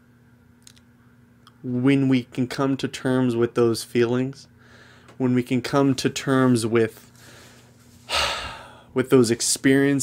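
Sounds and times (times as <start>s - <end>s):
man talking: 1.6s - 4.5s, 5.2s - 7.1s, 8.9s - 10.0s
man breathing in deeply: 4.6s - 5.2s, 7.2s - 8.9s.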